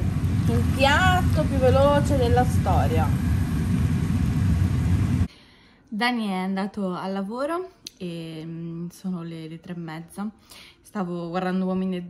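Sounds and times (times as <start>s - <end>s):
low motor rumble: 0.0s - 5.3s.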